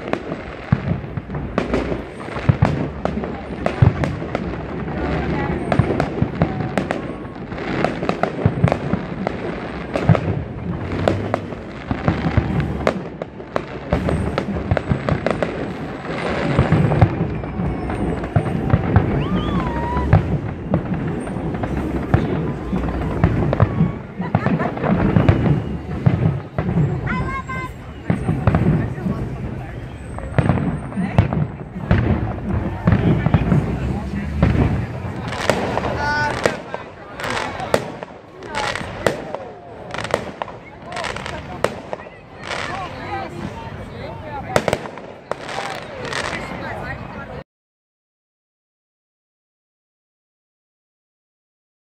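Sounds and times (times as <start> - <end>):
fireworks bangs and crackling: 0.0 - 47.4.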